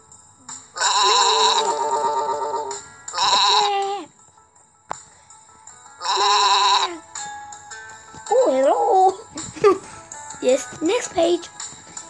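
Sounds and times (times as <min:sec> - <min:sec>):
soft background music: 0:00.0 - 0:12.0
cartoon sheep bleat: 0:00.8 - 0:02.5, 0:03.1 - 0:04.0, 0:06.0 - 0:07.0.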